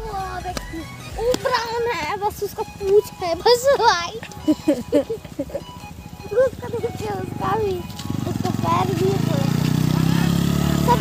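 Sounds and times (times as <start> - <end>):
motorcycle engine passing: 2.0 - 11.0.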